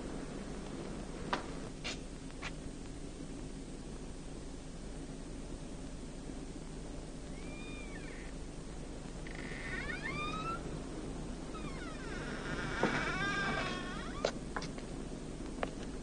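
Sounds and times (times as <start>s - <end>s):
door hinges creaking: 9.2s - 10.6s, 11.5s - 14.4s.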